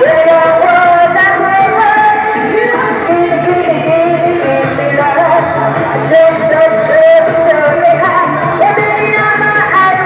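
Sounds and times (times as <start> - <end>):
loud backing track over pa: 0.0 - 10.0
woman singing into a microphone: 0.0 - 10.0.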